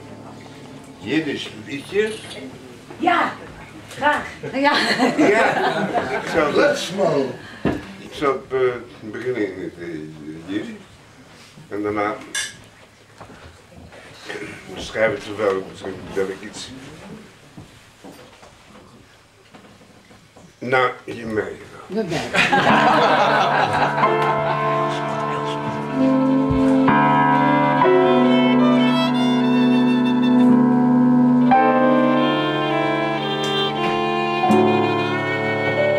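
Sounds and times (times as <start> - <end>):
upright piano accompaniment: 0.0 - 3.7, 22.5 - 35.9
violin playing long notes: 23.6 - 35.9.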